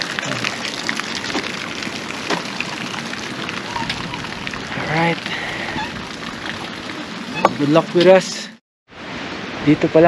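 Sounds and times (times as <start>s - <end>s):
rain pattering: 0.0s - 8.4s.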